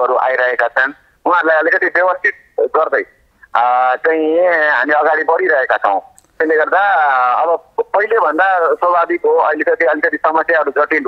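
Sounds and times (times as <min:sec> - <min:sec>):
person talking over telephone: 0:00.0 - 0:11.0.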